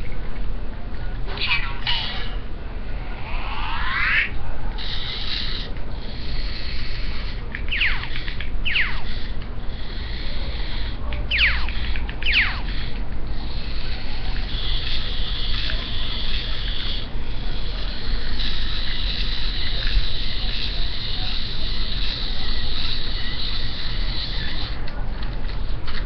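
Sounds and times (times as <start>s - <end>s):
toy robot motors whining: 1.4s - 2.4s, 3.2s - 26.0s.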